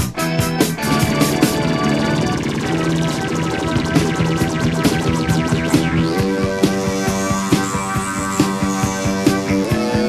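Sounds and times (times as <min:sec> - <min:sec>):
rock band sustained chords: 0:00.0 - 0:10.0
drum hits: 0:00.8 - 0:07.7.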